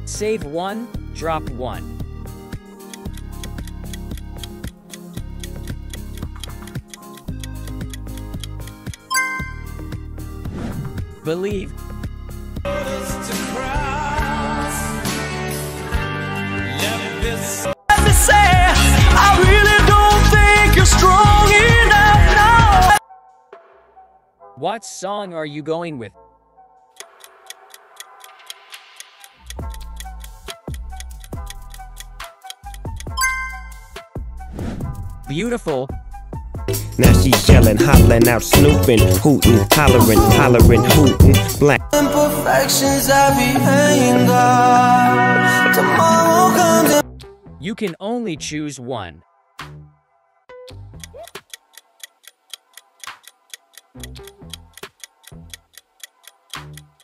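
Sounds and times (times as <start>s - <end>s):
background music: 0.0s - 57.0s
clock ticking: 2.8s - 9.9s, 26.9s - 34.0s, 37.0s - 41.7s, 50.6s - 57.0s
heavy bass beat: 36.7s - 41.7s.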